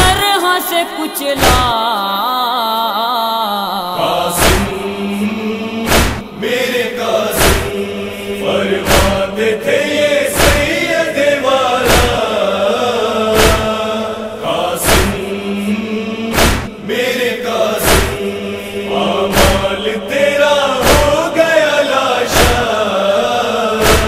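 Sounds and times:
voices chanting: 0.0 - 24.0
chest-beating thumps: 1.4 - 1.8, 4.4 - 4.8, 5.8 - 6.4, 7.3 - 7.8, 8.8 - 9.3, 10.4 - 10.8, 11.8 - 12.3, 13.3 - 13.8, 14.8 - 15.2, 16.3 - 16.8, 17.8 - 18.2, 19.3 - 19.8, 20.8 - 21.2, 22.3 - 22.7, 23.8 - 24.0.

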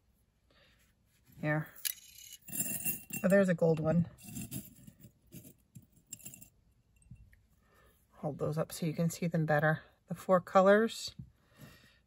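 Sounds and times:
metal eyelets clinking: 1.8 - 3.5, 4.2 - 7.2.

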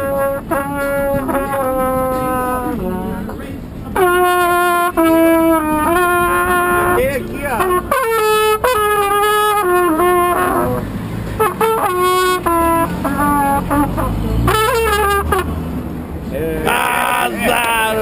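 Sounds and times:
solo trumpet playing: 0.0 - 3.3, 4.0 - 15.8.

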